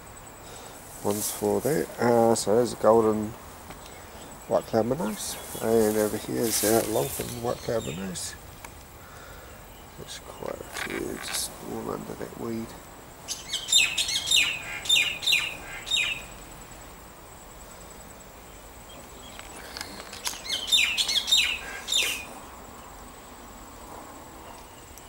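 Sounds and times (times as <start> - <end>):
songbird chirping: 0.0 - 25.0.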